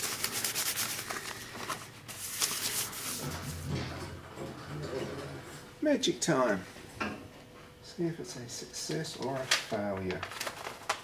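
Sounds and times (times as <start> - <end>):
paper rubbing over a plate: 0.0 - 3.4.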